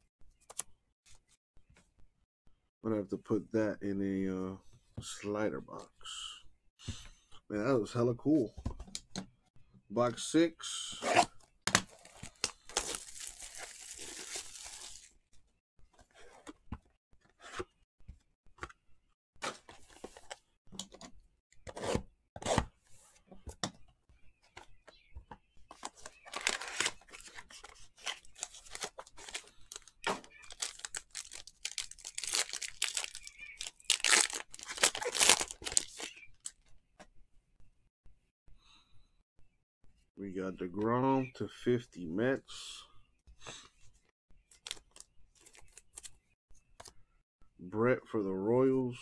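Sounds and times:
plastic wrap tearing and crinkling: 12.2s - 15.1s, 26.3s - 36.5s.

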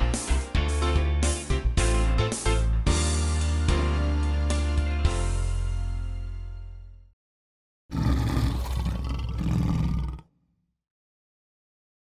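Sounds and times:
loud rough roar: 7.9s - 10.2s.

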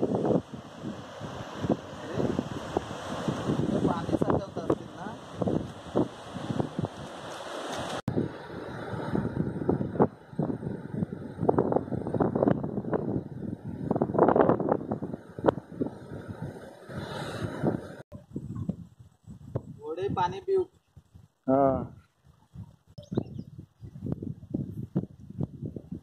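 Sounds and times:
wind buffeting the microphone: 0.0s - 26.0s.

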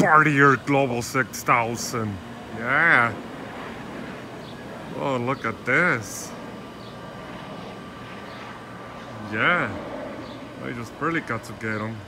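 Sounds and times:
faint steady whine: 0.0s - 12.0s
jet passing overhead: 0.0s - 12.0s.

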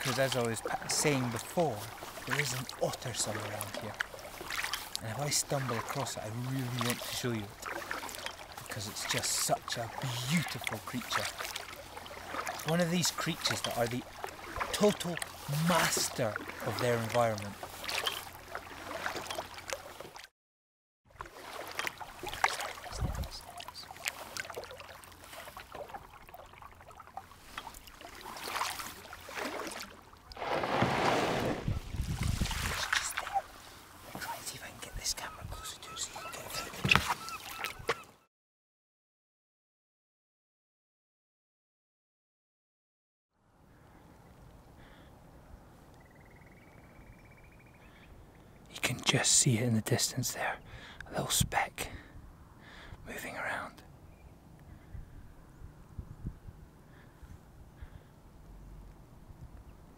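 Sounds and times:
paddle splashing in water: 0.0s - 20.3s, 21.1s - 34.5s, 35.5s - 38.1s
shore ambience: 0.0s - 20.3s, 21.1s - 38.3s
rushing splash: 5.6s - 20.2s, 21.3s - 26.1s, 27.8s - 33.6s
distant bird calls: 33.1s - 38.3s, 43.6s - 48.7s, 52.6s - 58.9s.

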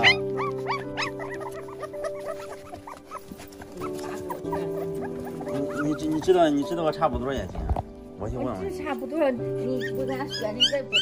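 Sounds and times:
puppies crying: 0.0s - 7.1s, 9.6s - 11.0s
background music with held notes: 0.0s - 11.0s.

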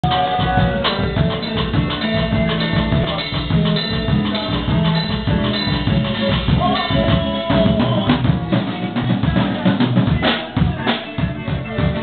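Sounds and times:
drum kit: 0.0s - 12.0s
guitar: 0.0s - 12.0s.

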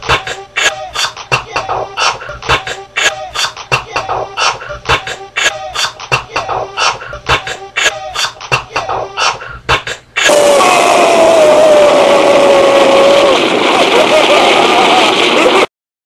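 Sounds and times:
beatboxing: 0.0s - 10.4s
explosion sound effect: 10.3s - 15.7s.

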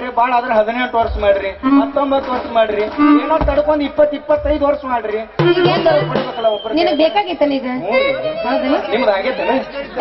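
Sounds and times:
dialogue over a pa: 0.0s - 10.0s.

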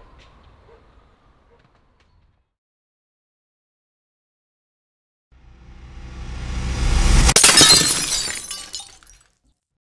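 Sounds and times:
rising swell: 5.4s - 7.4s
glass shattering: 7.3s - 9.3s.

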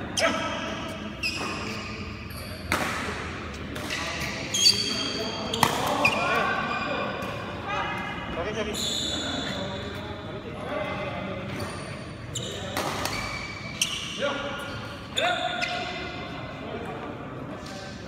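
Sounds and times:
shoes squeaking on court floor: 0.2s - 7.3s, 8.4s - 10.3s, 11.4s - 16.2s.

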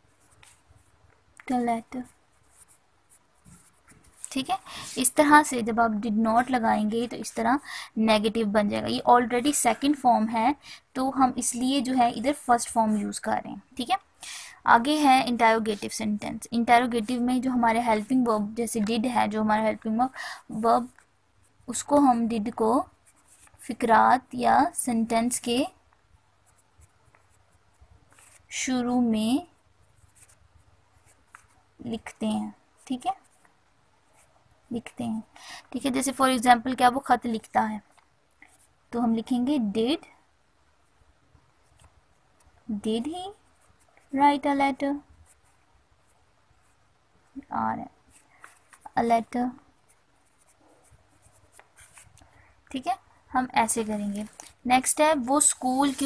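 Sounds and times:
pen scratching on paper: 0.0s - 14.1s, 14.8s - 25.7s, 26.4s - 40.0s, 47.8s - 52.9s, 53.6s - 56.0s.

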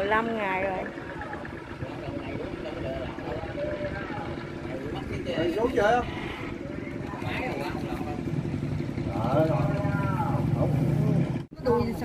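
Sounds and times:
people's voices: 0.0s - 12.0s
small engine running: 0.0s - 12.0s.

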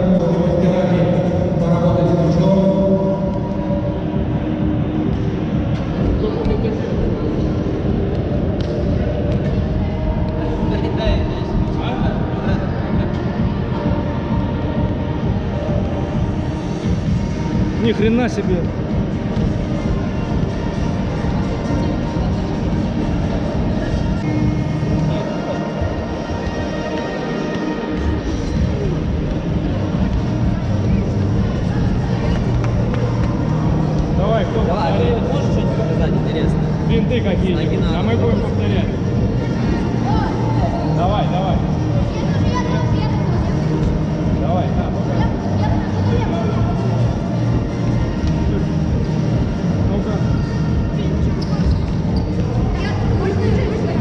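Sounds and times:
background music: 0.0s - 54.0s
children chattering: 37.7s - 54.0s.

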